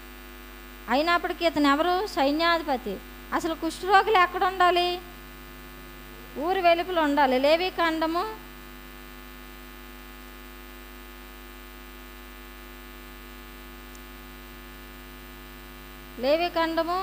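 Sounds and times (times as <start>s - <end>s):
electrical mains hum: 0.0s - 17.0s
woman's voice: 0.9s - 5.1s, 6.4s - 8.4s, 16.2s - 17.0s.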